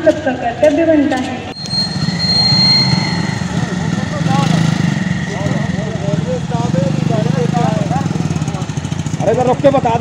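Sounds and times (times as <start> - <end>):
motorcycle engines idling: 1.6 - 10.0.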